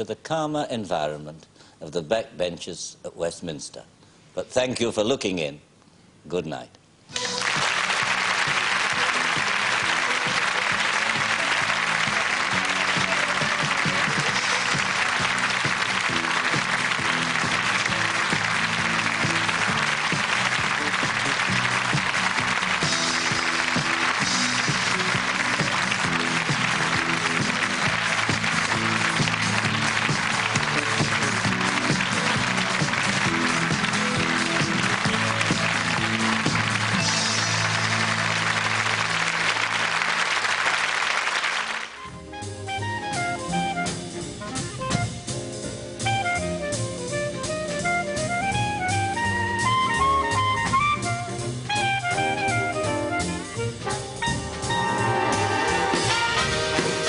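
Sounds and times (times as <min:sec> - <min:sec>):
audience applauding: 0:07.1 - 0:42.1, 0:54.5 - 0:57.0
closing theme music: 0:07.1 - 0:57.0.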